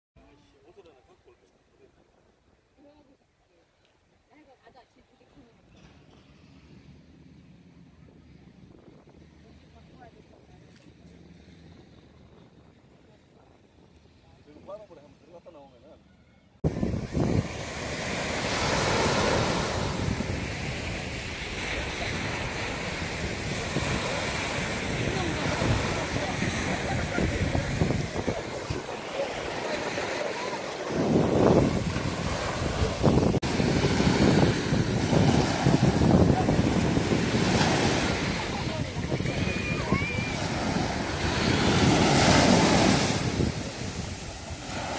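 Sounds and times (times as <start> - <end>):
small waves breaking on beach: 16.6 - 44.9
wind buffeting microphone: 16.6 - 44.9.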